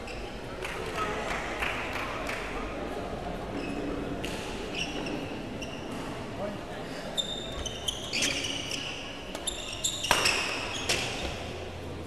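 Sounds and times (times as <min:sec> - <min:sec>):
shoes squeaking on court floor: 0:03.6 - 0:06.2, 0:07.2 - 0:11.6.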